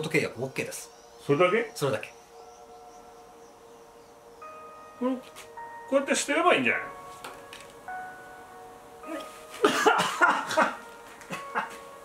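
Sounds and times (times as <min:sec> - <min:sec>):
soft film score: 0:00.0 - 0:12.0.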